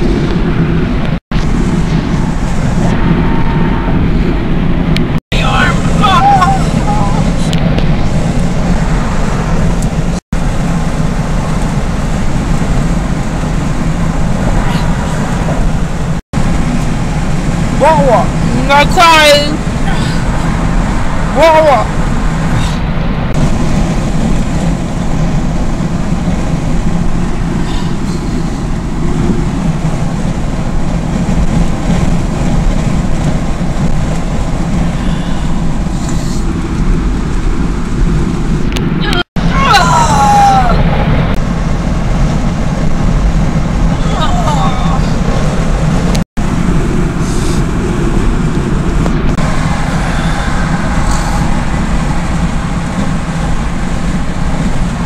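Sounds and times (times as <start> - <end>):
engine and tyre noise in cabin: 0.0 - 55.0.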